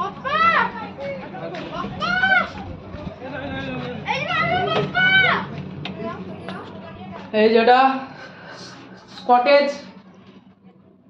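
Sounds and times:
child shouting: 0:00.0 - 0:00.9, 0:02.0 - 0:02.6, 0:04.1 - 0:05.5
voices: 0:00.0 - 0:10.2
steady low hum: 0:00.0 - 0:11.0.

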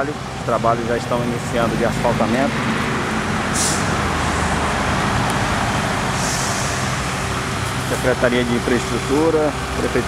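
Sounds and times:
heavy truck engine running: 0:00.0 - 0:10.0
road traffic noise: 0:00.0 - 0:10.0.

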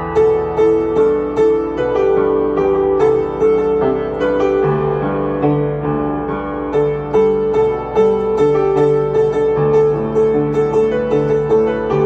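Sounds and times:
upright piano playing: 0:00.0 - 0:12.0.

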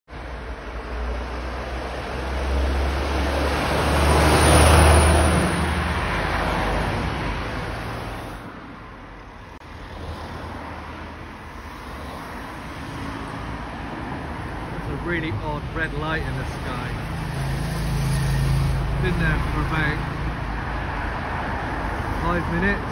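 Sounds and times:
background traffic noise: 0:00.1 - 0:22.9
vehicle passing by: 0:00.2 - 0:22.9.

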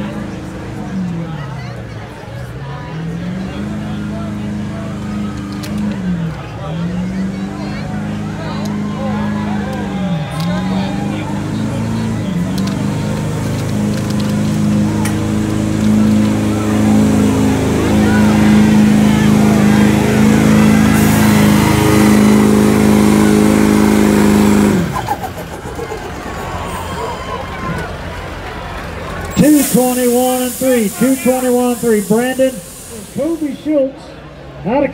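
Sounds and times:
diesel engine under full load: 0:00.0 - 0:34.9.

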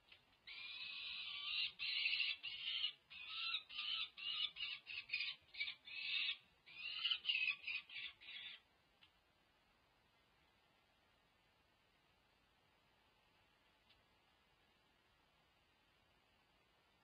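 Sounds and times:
falcon screaming calls: 0:00.5 - 0:08.6.

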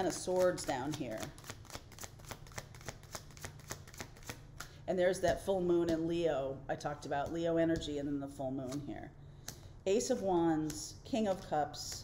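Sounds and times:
cards being shuffled: 0:00.1 - 0:04.8.

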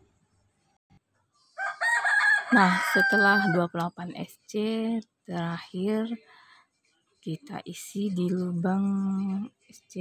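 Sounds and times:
rooster crowing: 0:01.6 - 0:03.7.

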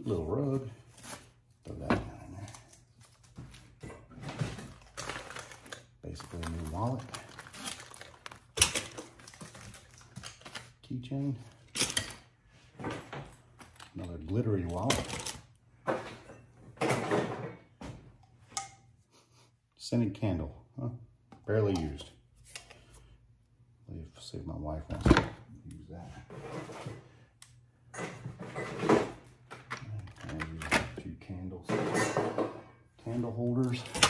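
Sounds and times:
man talking in low voice: 0:00.0 - 0:00.8, 0:01.6 - 0:02.7, 0:06.0 - 0:07.2, 0:10.8 - 0:11.5, 0:13.9 - 0:15.1, 0:19.8 - 0:22.2, 0:23.9 - 0:26.3, 0:29.8 - 0:32.2, 0:33.0 - 0:34.0.

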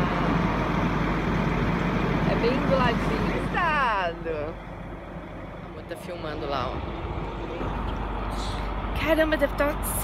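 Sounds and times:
woman speaking: 0:02.3 - 0:04.6, 0:09.0 - 0:10.0.

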